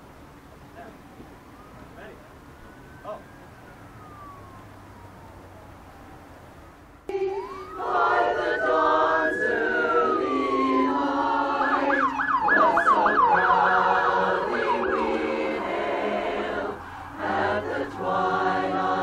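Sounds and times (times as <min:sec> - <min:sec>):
emergency siren wailing and yelping: 0:00.4 - 0:19.0
choir singing: 0:07.1 - 0:19.0.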